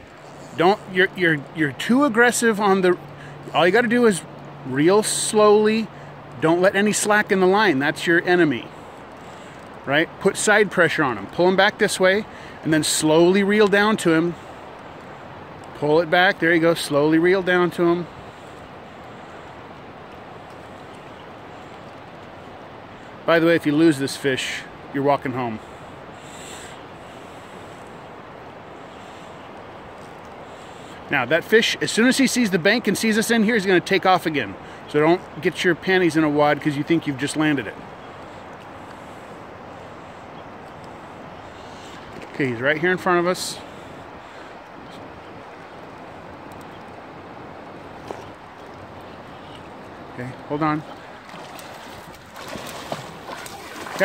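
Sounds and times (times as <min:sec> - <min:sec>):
river water rushing: 0:00.0 - 0:54.0
river rushing over rocks: 0:46.2 - 0:54.0.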